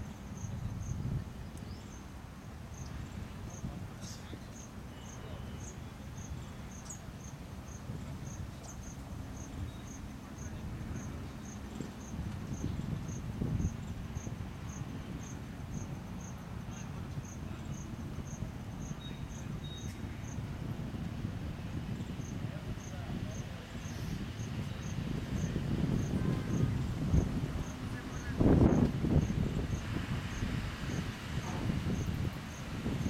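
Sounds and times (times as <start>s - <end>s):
insect chirping: 2.7s - 3.7s, 4.5s - 20.4s, 22.0s - 31.2s.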